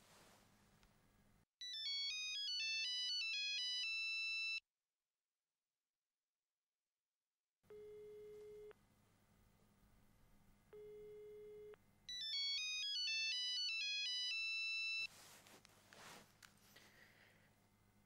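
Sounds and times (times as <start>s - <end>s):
soft rustle: 0.0s - 0.9s, 15.0s - 17.0s
mobile phone ringtone: 1.6s - 4.6s, 10.8s - 15.1s.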